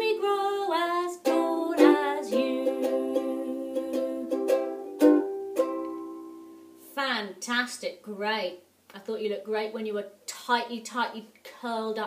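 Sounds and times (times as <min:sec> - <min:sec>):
ukulele strummed chords: 0:01.0 - 0:06.8.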